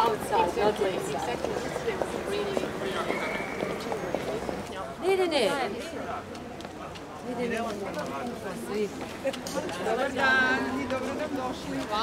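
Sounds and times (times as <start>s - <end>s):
other voices talking: 0.0s - 12.0s
woman talking: 5.0s - 5.8s.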